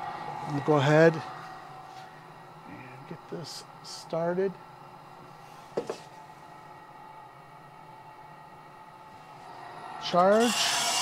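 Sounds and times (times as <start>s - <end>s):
coffee roaster humming: 0.0s - 11.0s.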